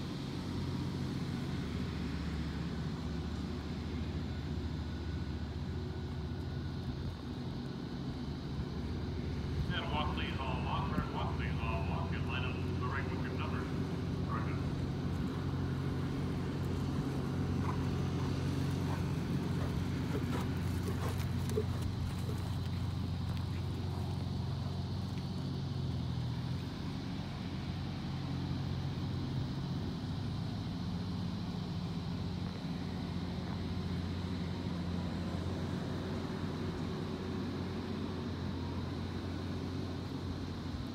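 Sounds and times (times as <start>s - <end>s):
low motor hum: 0.0s - 40.9s
faint voices: 9.6s - 14.8s.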